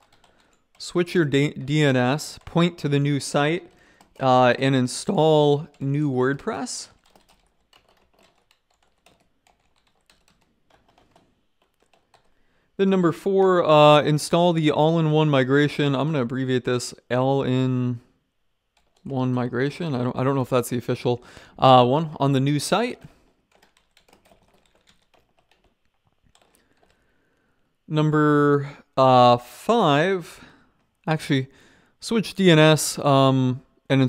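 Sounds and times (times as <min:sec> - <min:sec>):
typing on computer keyboard: 0:00.0 - 0:04.3, 0:05.6 - 0:12.4, 0:18.8 - 0:19.1, 0:23.5 - 0:27.0.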